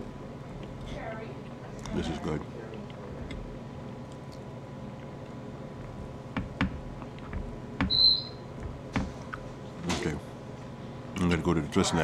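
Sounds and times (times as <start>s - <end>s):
steady hum: 0.0s - 12.0s
short high-pitched beep: 7.9s - 8.4s.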